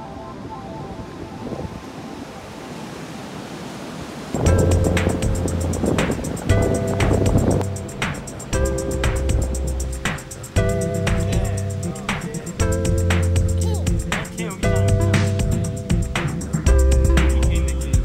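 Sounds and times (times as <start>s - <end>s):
ocean surf: 0.0s - 18.0s
wind: 0.0s - 18.0s
music with heavy bass beat: 4.4s - 18.0s.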